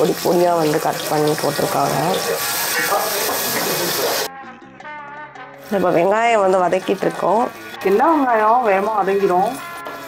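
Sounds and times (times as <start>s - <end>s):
food sizzling in hot oil: 0.0s - 4.3s, 5.6s - 10.0s
background music: 0.0s - 10.0s
person singing: 3.8s - 6.2s.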